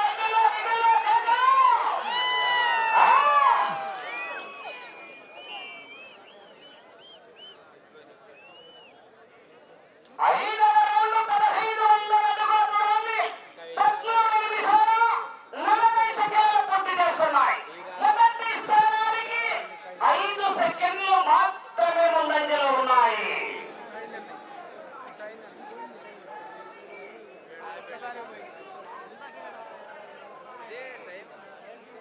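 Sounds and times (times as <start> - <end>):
man speaking over loudspeaker: 0.0 - 2.0, 10.2 - 26.1.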